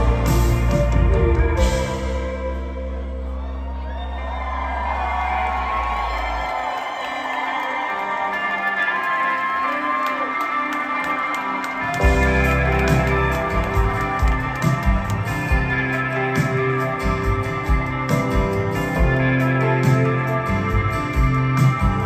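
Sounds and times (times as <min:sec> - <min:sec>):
rock band playing loudly: 0:00.0 - 0:03.7, 0:07.6 - 0:22.0
held keyboard and bass drone: 0:00.0 - 0:06.3
crowd cheering and whooping: 0:00.0 - 0:22.0.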